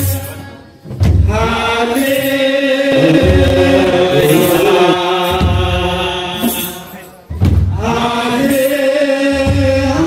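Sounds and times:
men chanting in unison: 1.3 - 6.0
deep drum beats: 2.9 - 5.6.

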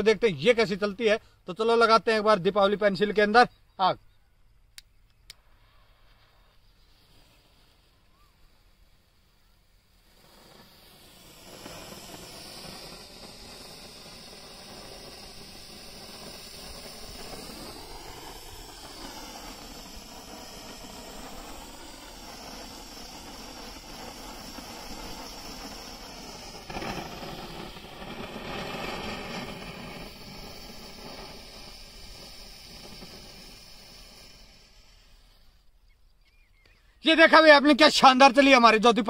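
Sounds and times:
firework hissing: 0.0 - 3.4, 5.2 - 39.0.

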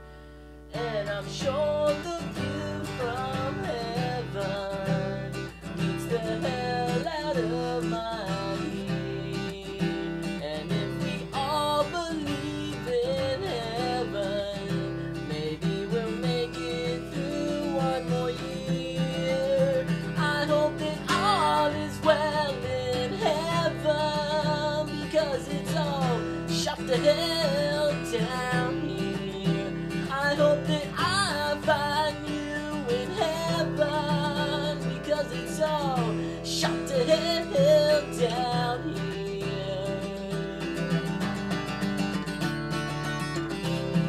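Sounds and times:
acoustic guitar strumming: 0.0 - 44.0
man singing: 0.7 - 41.9.

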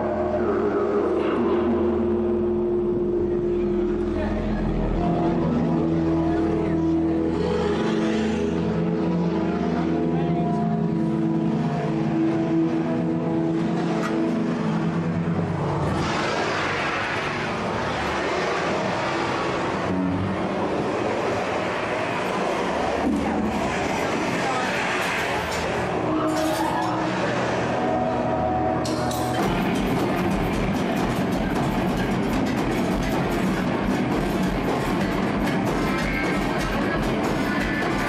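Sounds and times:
dense noisy wash: 0.0 - 38.0.

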